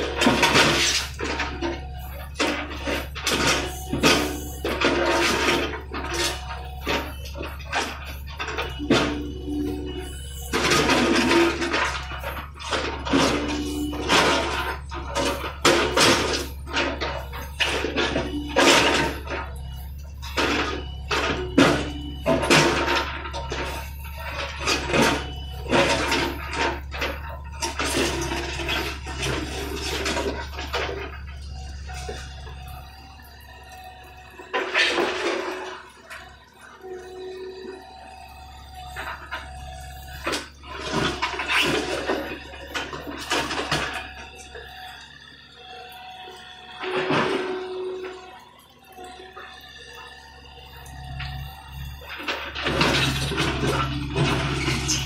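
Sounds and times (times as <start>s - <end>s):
diesel engine running: 0.0s - 55.0s.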